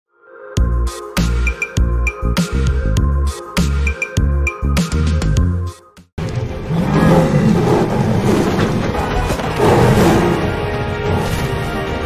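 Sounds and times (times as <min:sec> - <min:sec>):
trailer music: 0:00.1 - 0:12.0
growl-like roar: 0:06.6 - 0:11.4.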